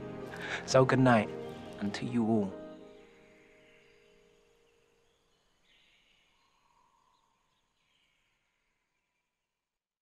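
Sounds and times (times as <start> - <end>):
music: 0.0 - 5.0.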